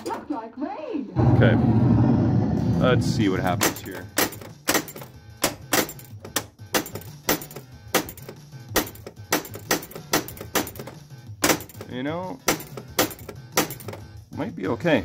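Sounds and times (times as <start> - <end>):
pinball flipper and ball clacks: 3.6 - 14.0
pinball game music: 3.6 - 14.0.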